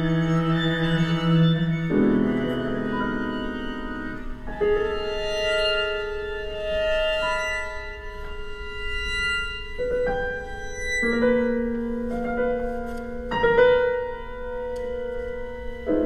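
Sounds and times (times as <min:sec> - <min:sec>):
piano quintet long held notes: 0:00.0 - 0:16.0.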